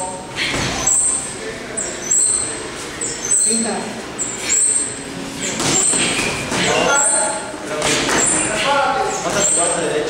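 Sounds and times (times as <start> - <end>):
voices: 0.0 - 10.0
high-pitched squeaks: 0.7 - 7.4.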